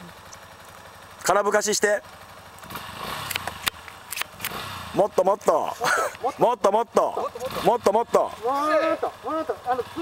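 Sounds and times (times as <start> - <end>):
motorcycle engine revving: 0.0 - 10.0.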